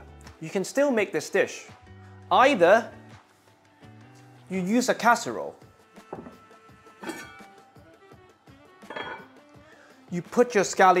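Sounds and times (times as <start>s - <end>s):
background music: 0.0s - 11.0s
casserole knocking on wooden board: 6.2s - 6.4s
lid clinking: 7.0s - 7.6s, 8.8s - 9.3s.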